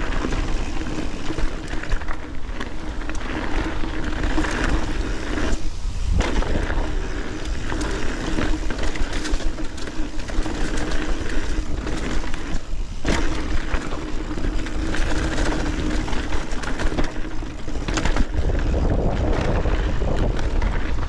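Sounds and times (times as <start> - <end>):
bike tyre noise on dirt: 0.0 - 21.0
wind rumble on microphone: 0.0 - 21.0.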